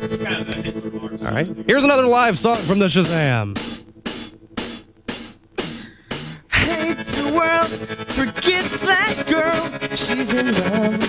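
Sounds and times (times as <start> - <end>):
rock drum kit playing: 0.0 - 11.0
cymbal and drum strikes: 2.3 - 8.8.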